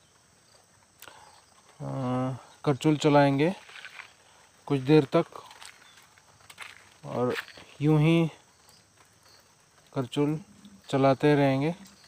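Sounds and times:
person speaking: 7.0 - 8.4, 9.9 - 12.0.

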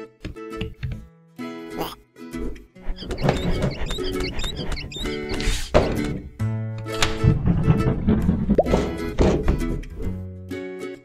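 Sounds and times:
plucked-string background music: 0.0 - 11.0
box landing in metal wheelbarrow: 5.9 - 10.0.

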